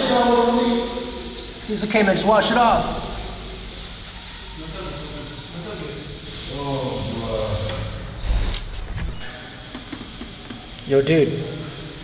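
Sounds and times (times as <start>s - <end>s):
steady hiss: 0.0s - 12.0s.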